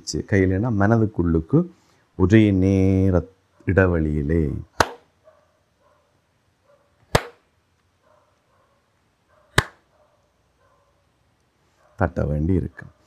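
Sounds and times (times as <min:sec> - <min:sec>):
sharp hand claps: 0:04.8 - 0:05.0, 0:07.1 - 0:07.4, 0:09.6 - 0:09.8.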